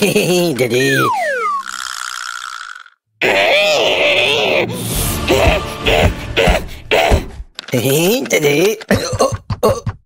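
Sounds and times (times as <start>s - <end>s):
buzzing ratchet rattle: 1.6s - 3.0s.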